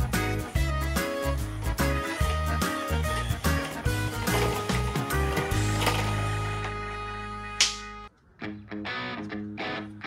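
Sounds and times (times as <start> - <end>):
background music with riff: 0.0 - 10.0.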